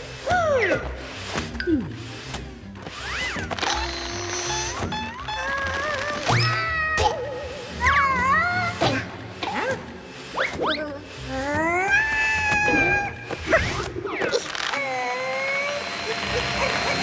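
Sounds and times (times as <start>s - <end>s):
background music: 0.0s - 17.0s
high-pitched cartoon squeals: 3.0s - 8.7s.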